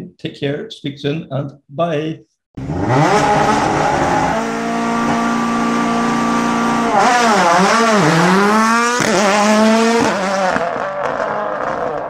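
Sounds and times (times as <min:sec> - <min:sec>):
rally car engine at high revs: 0:02.6 - 0:12.0.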